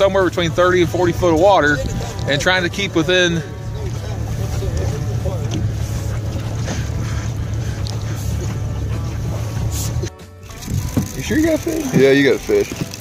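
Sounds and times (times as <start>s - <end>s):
background music: 0.0s - 13.0s
boat motor idling: 0.0s - 13.0s.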